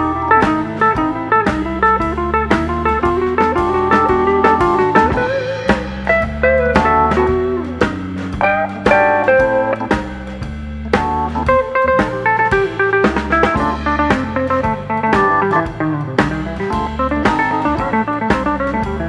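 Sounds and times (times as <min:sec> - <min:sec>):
blues guitar bending notes: 0:00.0 - 0:19.0
drum kit beat: 0:00.0 - 0:19.0.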